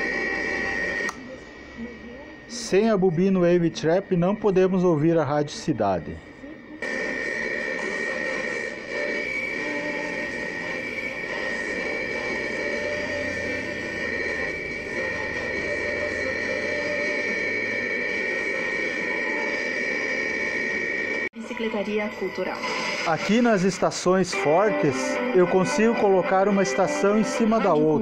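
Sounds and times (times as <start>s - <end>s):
high unbroken whine: 0.0s - 28.0s
radio hiss and static: 0.0s - 28.0s.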